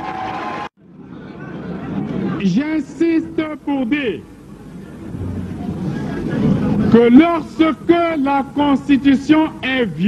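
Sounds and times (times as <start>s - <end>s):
low rumbling noise: 0.0s - 10.0s
man speaking: 6.9s - 10.0s.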